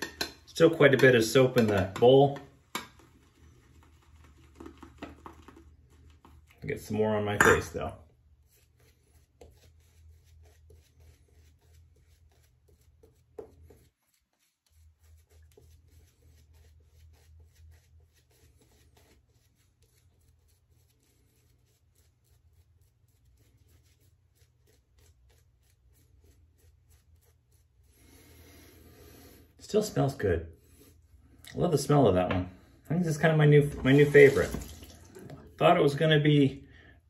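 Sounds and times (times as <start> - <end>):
shaving brush swishing: 8.3 - 28.4, 33.1 - 36.3.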